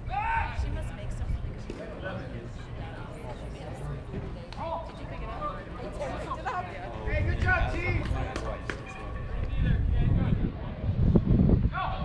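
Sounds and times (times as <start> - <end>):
wind rumble on microphone: 6.9 - 8.3, 9.2 - 12.0.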